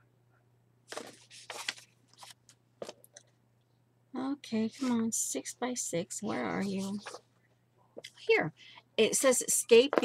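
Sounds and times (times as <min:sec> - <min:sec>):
paper rustling and crinkling: 0:00.9 - 0:03.0, 0:06.2 - 0:07.3.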